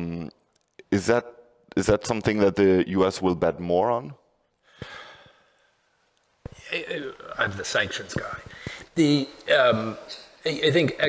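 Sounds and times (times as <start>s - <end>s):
person breathing in: 4.6s - 5.8s.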